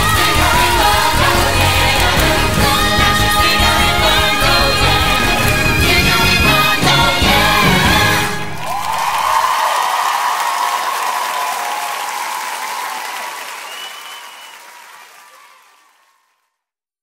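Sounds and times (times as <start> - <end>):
audience applauding and cheering: 0.0 - 16.4
whistle: 13.6 - 14.8.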